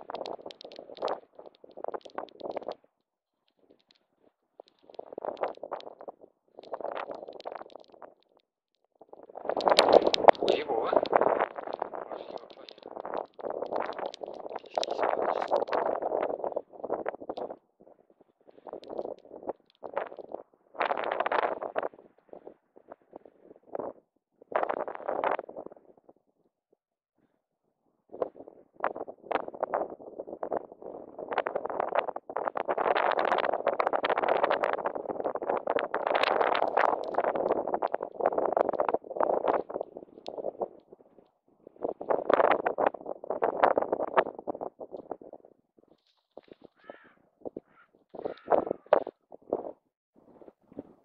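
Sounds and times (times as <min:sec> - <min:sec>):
muffled indistinct voice: 0:10.4 - 0:11.1, 0:12.0 - 0:12.9, 0:14.5 - 0:15.5.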